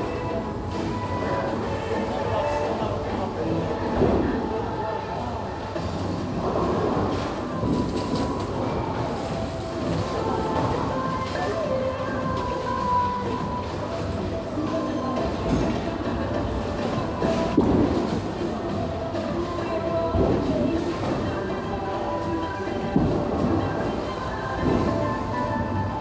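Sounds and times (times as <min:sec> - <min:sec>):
bowling balls rolling: 0:00.0 - 0:26.0
music playing: 0:00.0 - 0:26.0.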